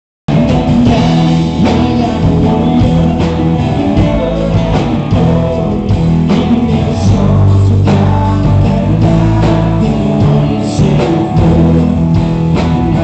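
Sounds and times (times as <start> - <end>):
drum kit: 0.3 - 13.0
electric guitar: 0.3 - 13.0
person singing: 0.3 - 13.0.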